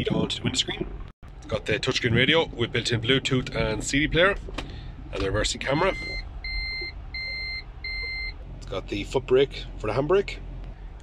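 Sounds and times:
reverse warning beeps: 5.2 - 8.4.

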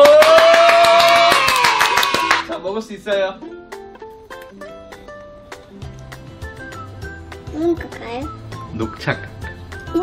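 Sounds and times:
children cheering: 0.0 - 2.5
rapid hand clapping: 0.0 - 2.5.

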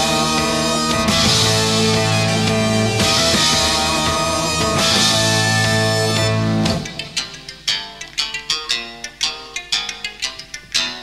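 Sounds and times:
rock band playing live: 0.0 - 9.0.

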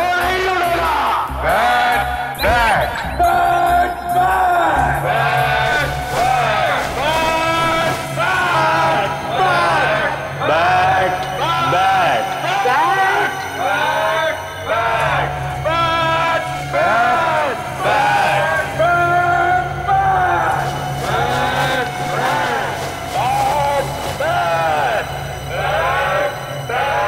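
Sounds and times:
low drone of background music: 0.0 - 27.0
people chanting in unison: 0.0 - 27.0.

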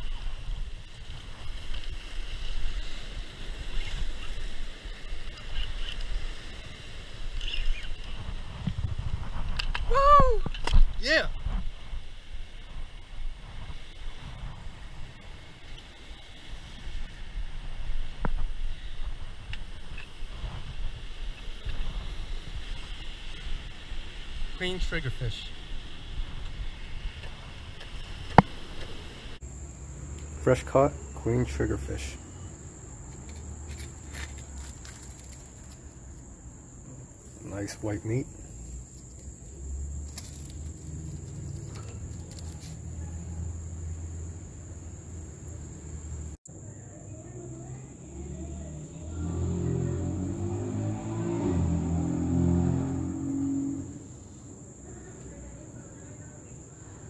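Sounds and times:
wind buffeting microphone: 0.0 - 15.8
insect chorus: 0.0 - 57.0.

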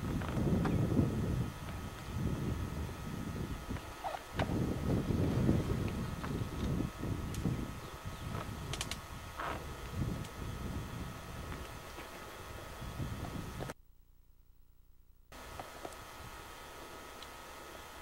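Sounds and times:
wind rumbling on microphone: 0.0 - 13.8.

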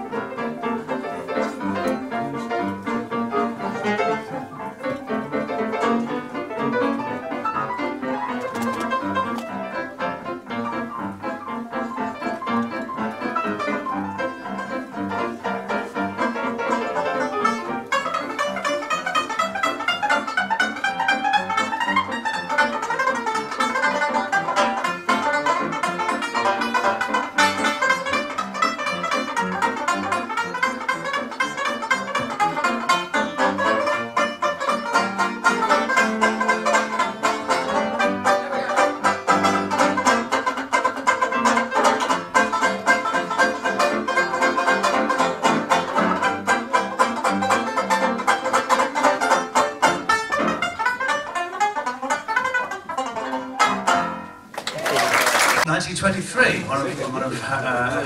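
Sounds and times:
piano: 0.0 - 55.6
banjo picked and strummed: 0.0 - 55.7.

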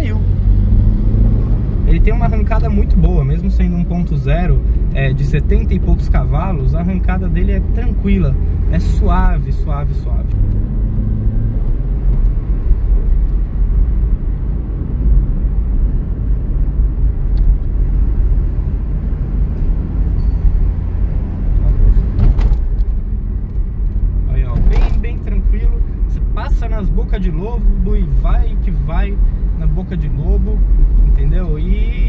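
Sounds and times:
car engine hum: 0.0 - 32.0
road rumble: 0.0 - 32.0.

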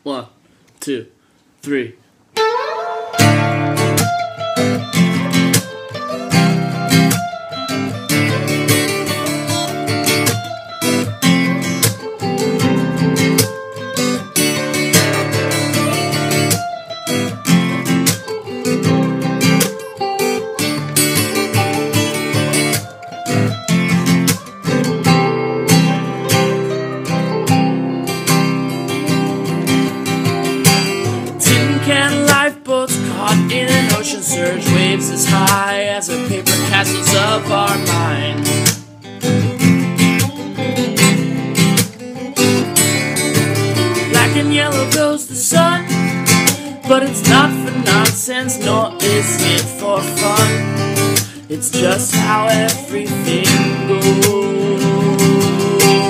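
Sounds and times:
acoustic guitar strumming: 2.3 - 56.0
electric guitar: 2.4 - 56.0.

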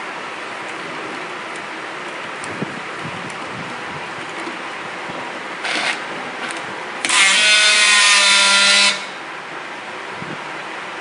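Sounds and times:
strapping tool motor whining: 5.6 - 9.2.

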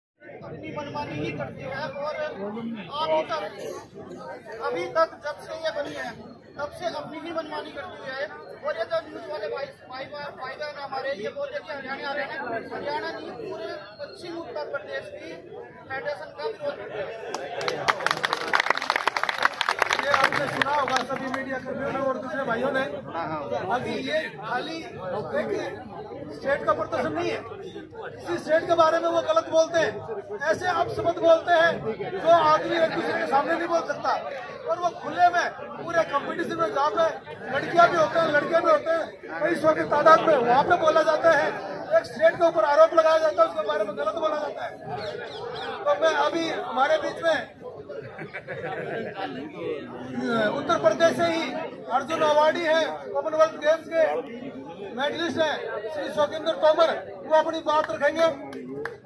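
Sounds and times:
man speaking through a microphone: 0.2 - 18.4, 19.8 - 59.0
crowd chatter: 0.2 - 59.0.

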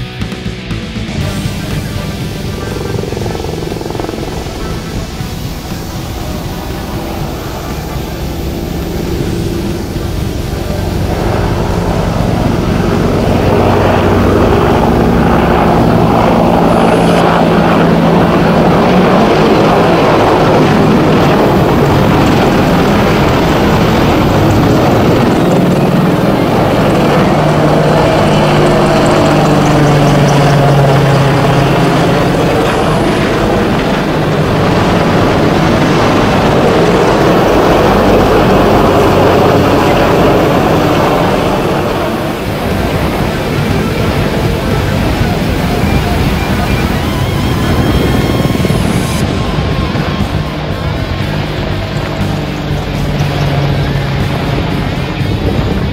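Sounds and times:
helicopter flying past: 0.0 - 55.9.

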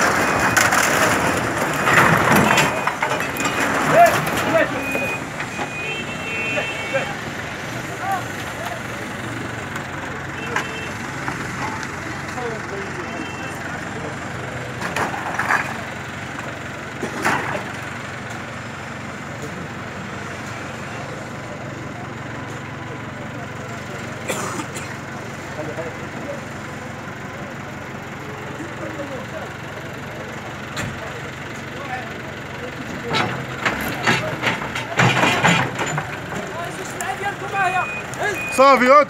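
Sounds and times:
diesel engine running: 0.0 - 39.0
high beeping: 4.5 - 6.6, 37.5 - 38.8.

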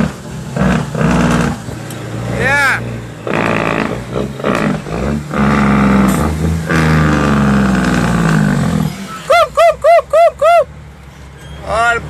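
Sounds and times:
truck diesel engine revving: 0.0 - 12.0.

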